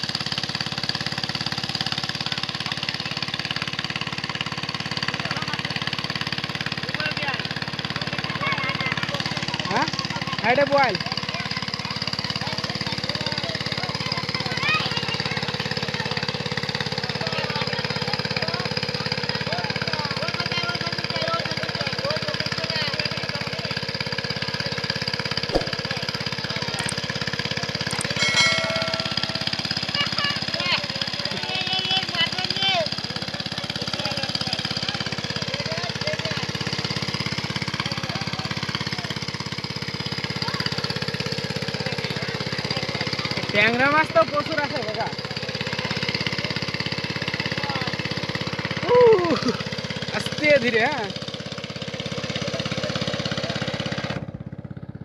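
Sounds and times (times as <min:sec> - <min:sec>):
small engine chugging: 0:00.0 - 0:55.0.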